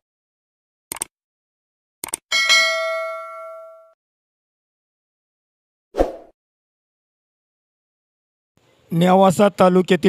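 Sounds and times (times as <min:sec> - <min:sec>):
notification bell ding: 0:02.3 - 0:04.0.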